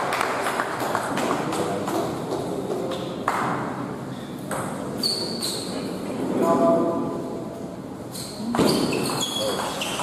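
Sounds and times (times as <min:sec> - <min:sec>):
background murmur: 0:00.0 - 0:10.0.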